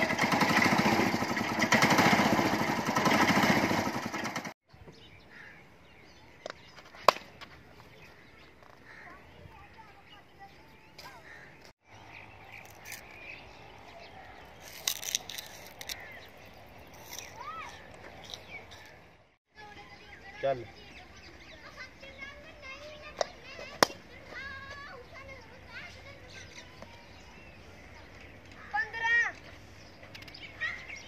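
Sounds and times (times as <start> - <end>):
faint outdoor ambience: 4.7 - 31.0
children calling and shouting: 7.8 - 11.7, 17.0 - 31.0.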